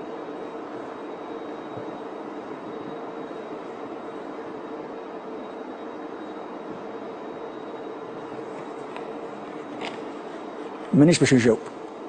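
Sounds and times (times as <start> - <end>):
constant low hum: 0.0 - 12.0
steady droning noise: 0.0 - 12.0.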